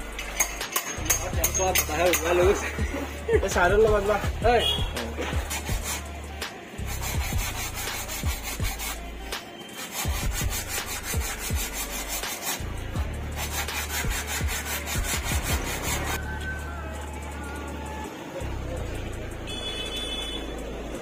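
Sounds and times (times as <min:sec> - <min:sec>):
music with deep bass beat: 0:00.0 - 0:21.0
sandpaper rubbing plywood: 0:04.6 - 0:06.1, 0:06.8 - 0:16.2.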